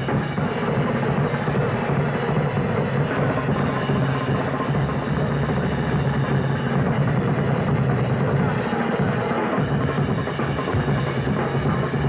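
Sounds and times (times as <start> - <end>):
drum kit roll: 0.0 - 12.0.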